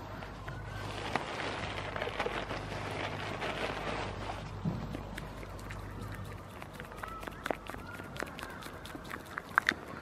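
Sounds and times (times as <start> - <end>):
peanut shells clicking and crackling: 4.9 - 10.0.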